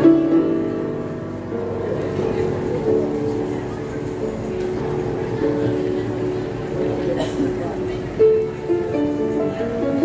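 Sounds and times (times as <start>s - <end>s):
upright piano playing: 0.0s - 10.0s.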